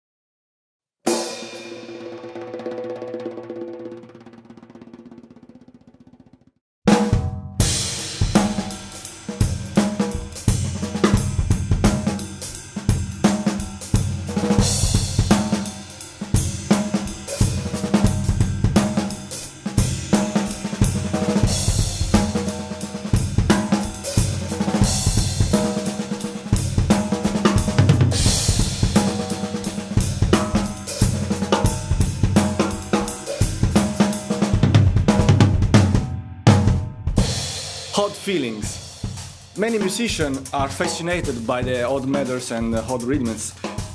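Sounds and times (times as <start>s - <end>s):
drum kit playing a groove: 1.1s - 5.7s, 6.9s - 43.9s.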